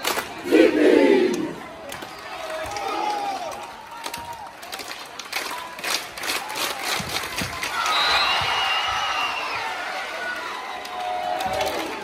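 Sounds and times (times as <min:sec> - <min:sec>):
crowd cheering and clapping: 0:00.0 - 0:12.0.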